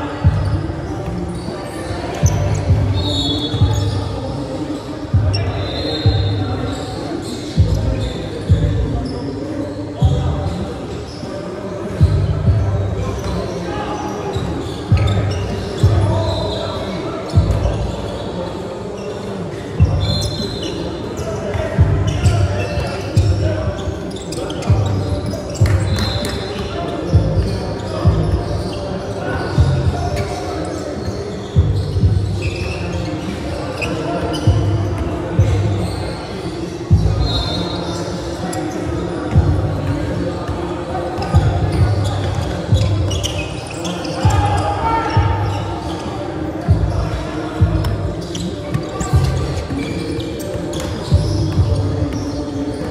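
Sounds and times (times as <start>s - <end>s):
players' voices: 0.0s - 52.9s.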